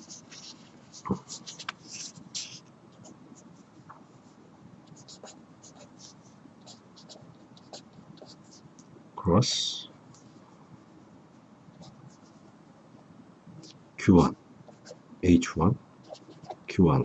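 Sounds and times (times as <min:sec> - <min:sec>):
marker pen scratching on paper: 0:00.0 - 0:08.7, 0:11.8 - 0:12.5, 0:14.7 - 0:15.0, 0:16.0 - 0:16.8.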